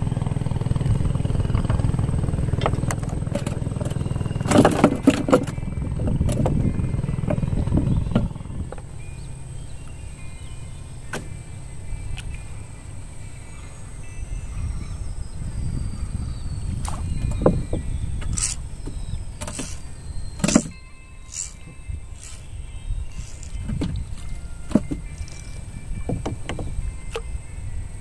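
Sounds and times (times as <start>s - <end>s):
steady low rumble: 0.0s - 28.0s
knocks against wooden boat: 26.0s - 27.2s.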